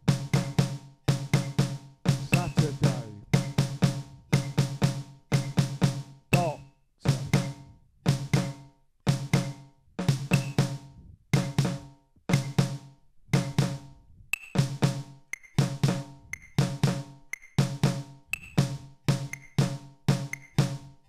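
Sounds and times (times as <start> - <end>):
snare drum rolls: 0.0 - 13.9, 14.6 - 21.0.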